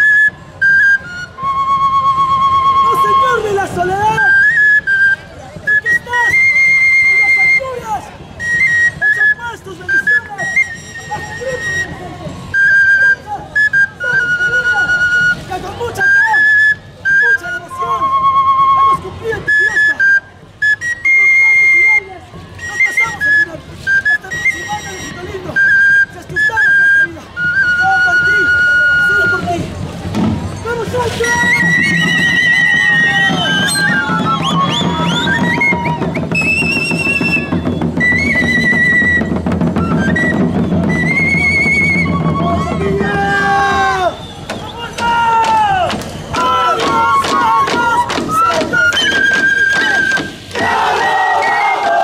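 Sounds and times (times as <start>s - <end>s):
high piping wind instrument: 0.0s - 52.0s
voices: 0.0s - 52.0s.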